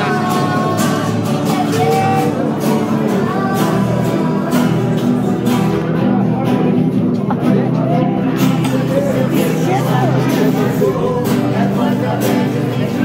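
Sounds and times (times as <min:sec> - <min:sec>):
acoustic guitars strumming: 0:00.0 - 0:13.0
voices singing: 0:00.0 - 0:13.0.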